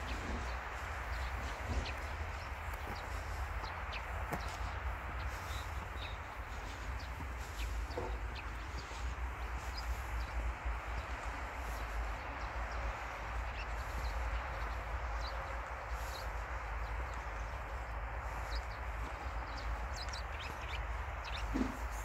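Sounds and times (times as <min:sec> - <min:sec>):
rushing outdoor background: 0:00.0 - 0:22.0
small birds chirping: 0:00.0 - 0:22.0.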